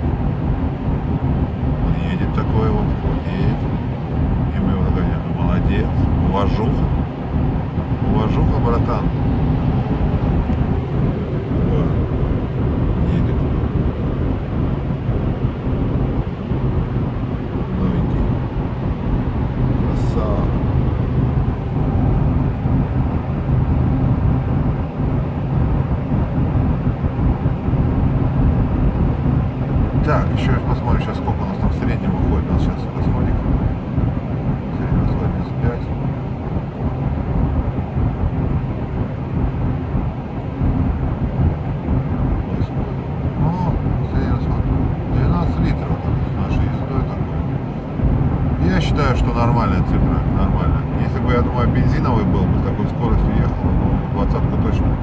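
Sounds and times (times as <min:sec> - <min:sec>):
diesel engine drone: 0:00.0 - 0:55.0.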